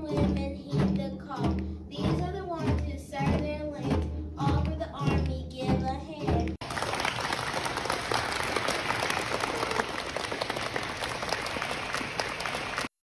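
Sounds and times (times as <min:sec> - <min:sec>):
children clapping: 0:06.6 - 0:13.0.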